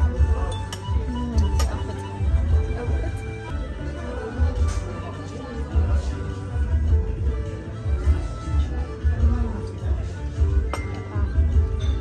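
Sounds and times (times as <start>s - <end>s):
music with bass beat: 0.0s - 3.8s, 5.7s - 12.0s
coffee cup clinking on saucer: 10.7s - 11.2s.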